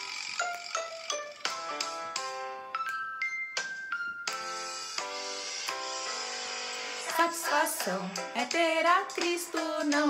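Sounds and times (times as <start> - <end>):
woman singing: 7.1 - 10.0.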